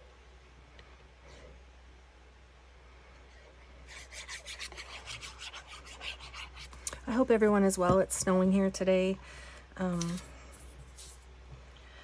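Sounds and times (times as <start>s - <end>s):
metal tip scratching on card: 3.9s - 6.7s.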